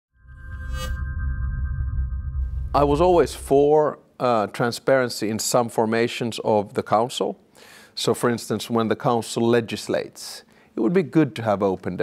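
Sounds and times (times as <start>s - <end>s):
bright shimmer: 0.2s - 3.7s
low bass drone: 0.2s - 3.8s.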